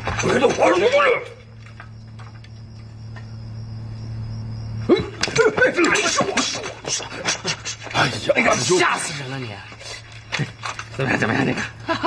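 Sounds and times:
low steady hum: 0.0 - 12.0
men's voices exclaiming: 0.2 - 1.5, 4.9 - 9.2.

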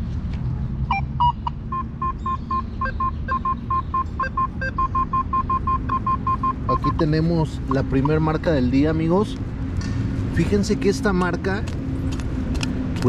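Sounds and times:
metal detector short beeps: 0.9 - 6.9
higher beeps: 0.9 - 7.1.

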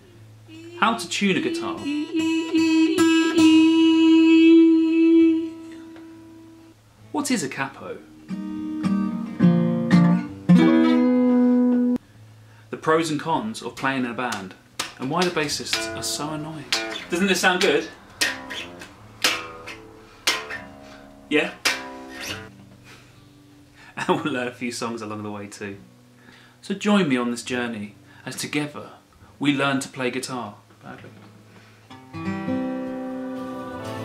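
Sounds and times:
acoustic guitar string plucked: 8.0 - 12.0, 13.8 - 22.8.

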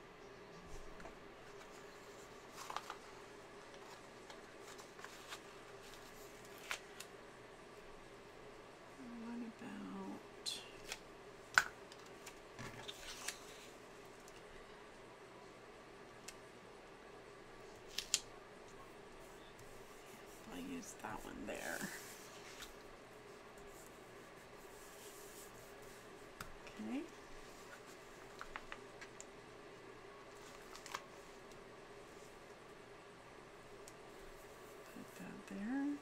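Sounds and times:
low steady hum: 0.0 - 36.0
paper rustling: 1.5 - 7.1, 30.4 - 31.4.

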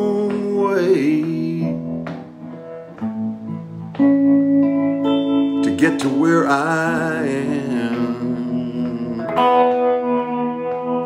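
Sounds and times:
person singing slow song: 0.0 - 2.7, 5.4 - 11.0
acoustic guitar chords ringing: 0.0 - 11.0.

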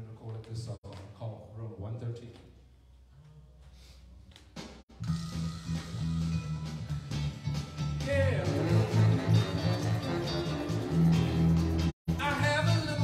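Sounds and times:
instrumental song over speaker: 4.9 - 13.0.

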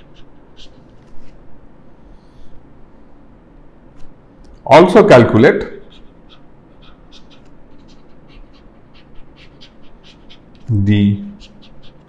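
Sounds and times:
pen writing squeakily: 11.4 - 12.0.

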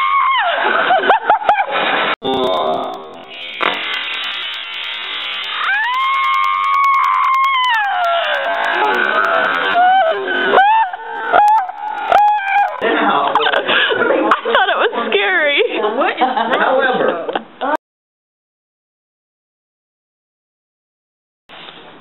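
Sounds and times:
rocket engine rushing hiss: 3.3 - 6.7
person screaming: 5.6 - 12.8.

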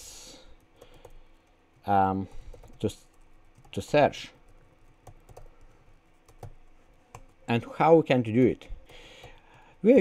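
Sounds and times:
computer keyboard keystrokes: 0.6 - 1.9, 2.5 - 7.4.

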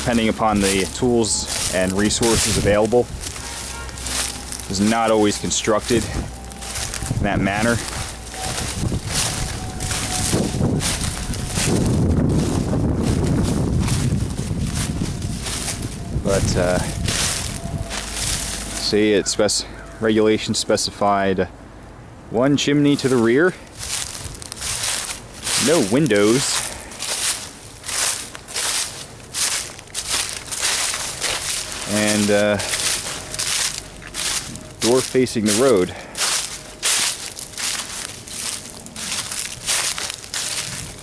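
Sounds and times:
wind buffeting microphone: 0.0 - 20.0, 23.7 - 26.2, 38.4 - 41.0
footsteps on leafy ground: 0.0 - 20.4, 22.9 - 41.0.

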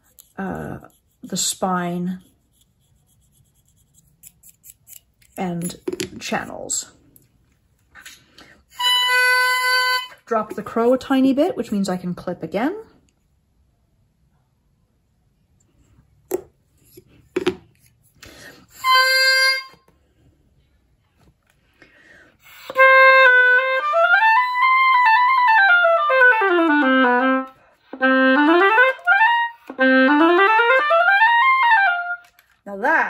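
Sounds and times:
knife clipping oboe reed: 0.0 - 1.2, 2.6 - 5.8
oboe playing scales: 8.7 - 10.3, 18.7 - 19.8, 22.4 - 32.3.

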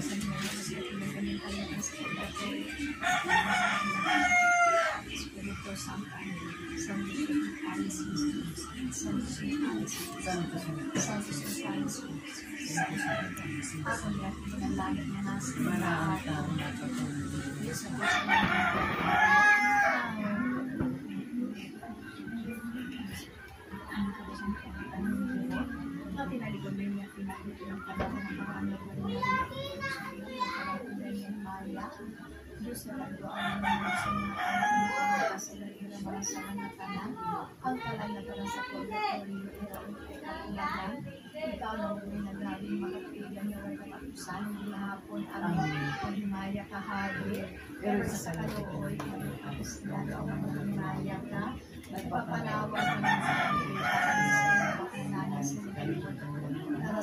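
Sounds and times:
rooster crowing: 3.0 - 5.2, 17.8 - 20.6, 33.4 - 35.4, 52.7 - 54.9.

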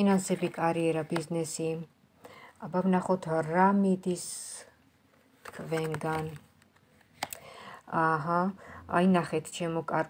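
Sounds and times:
woman speaking: 0.0 - 2.0, 2.6 - 4.8, 5.4 - 6.5, 7.8 - 10.0.

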